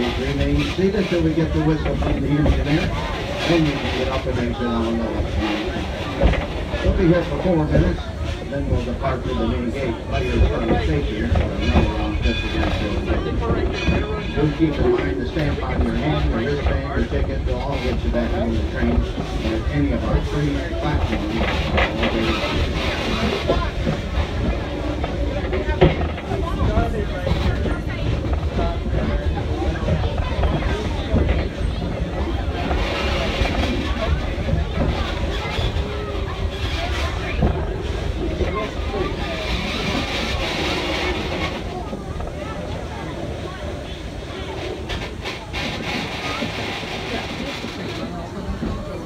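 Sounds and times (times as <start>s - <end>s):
people talking indistinctly: 0.0s - 49.0s
train rumbling on rails: 0.0s - 49.0s.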